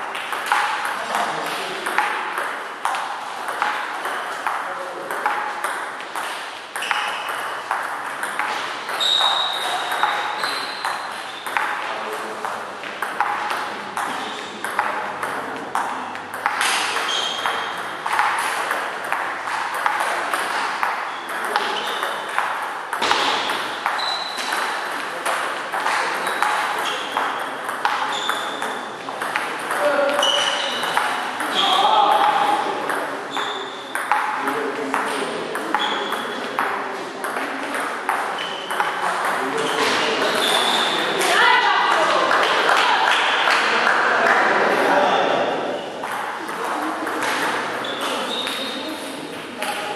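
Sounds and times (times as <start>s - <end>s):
murmur of voices: 8.7s - 21.9s, 23.0s - 49.9s
table tennis ball clicking: 33.9s - 39.4s.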